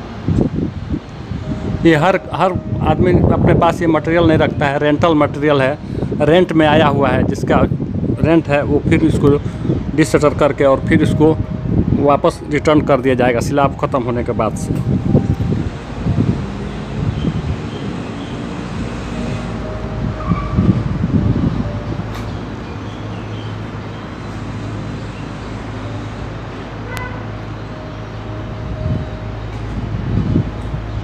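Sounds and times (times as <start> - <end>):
low rumbling swells: 0.0 - 26.8.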